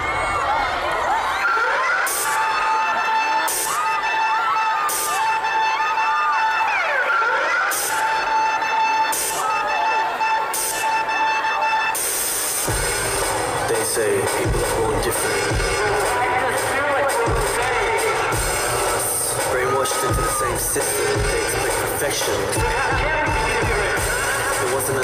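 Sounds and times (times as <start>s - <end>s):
crowd screaming: 0.0s - 25.0s
deep bass beat: 12.6s - 25.0s.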